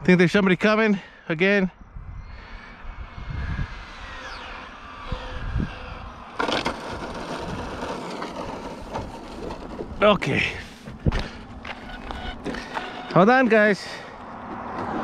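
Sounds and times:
car passing: 0:01.8 - 0:15.0
rough rushing noise: 0:02.0 - 0:11.2.

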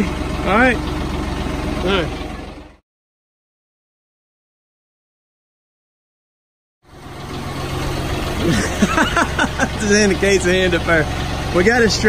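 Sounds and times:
tractor diesel engine idling: 0:00.0 - 0:02.8, 0:06.9 - 0:12.0
voices: 0:08.4 - 0:12.0.

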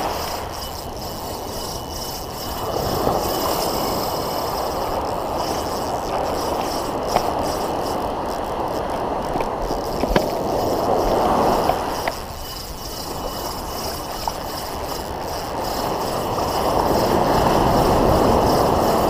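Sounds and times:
ocean surf washing: 0:00.0 - 0:19.0.

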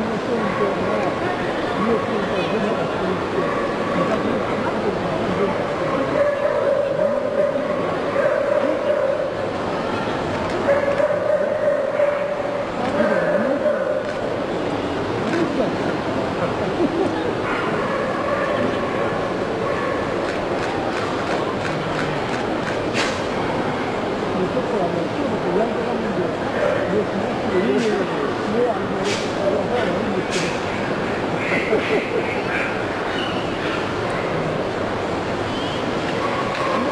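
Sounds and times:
crowd chatter: 0:00.0 - 0:36.9
dog barking: 0:05.8 - 0:09.4, 0:10.7 - 0:14.0, 0:17.4 - 0:20.1, 0:36.2 - 0:36.9.

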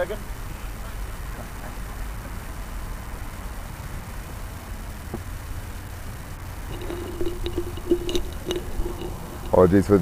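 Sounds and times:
faint broken pitched sound: 0:06.7 - 0:10.0.

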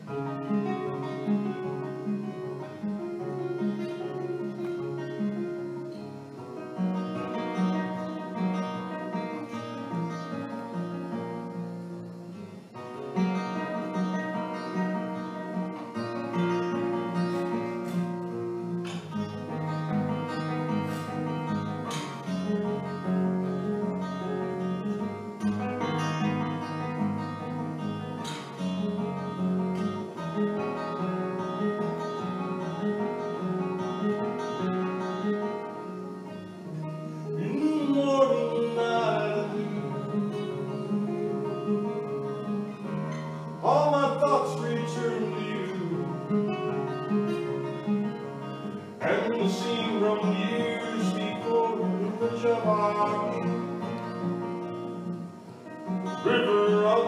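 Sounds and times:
acoustic guitar: 0:00.0 - 0:57.0.

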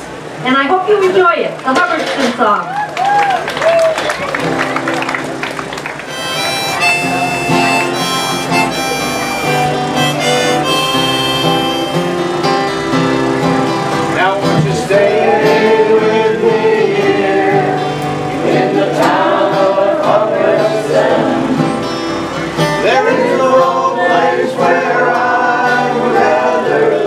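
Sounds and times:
acoustic guitar: 0:04.1 - 0:27.0
reedy melody line: 0:06.1 - 0:14.6
group singing: 0:14.2 - 0:21.9, 0:22.8 - 0:27.0.

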